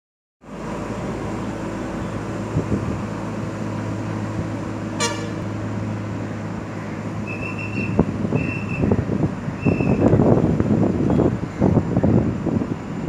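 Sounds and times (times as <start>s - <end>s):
vehicle running hum: 0.4s - 13.0s
short horn toot: 5.0s - 5.5s.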